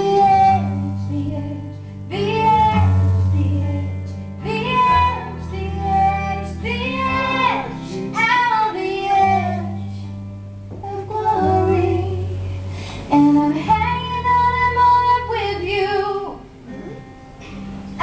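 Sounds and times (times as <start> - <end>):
woman singing: 0.0 - 16.5
strummed acoustic guitar: 16.6 - 18.0.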